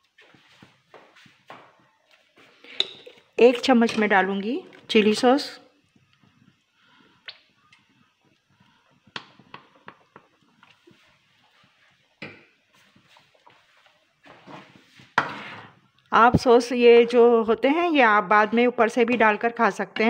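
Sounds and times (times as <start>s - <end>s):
spoon tapping a pan: 9.1s - 10.3s.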